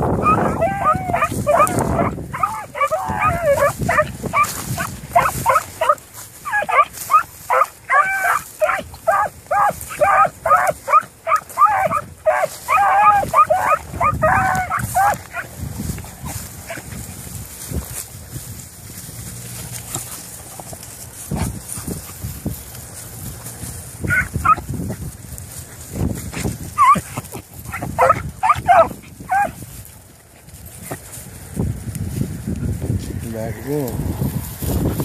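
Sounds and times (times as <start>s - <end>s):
hounds baying: 0.0s - 18.1s, 18.9s - 31.3s
wind rumbling on microphone: 0.0s - 35.0s.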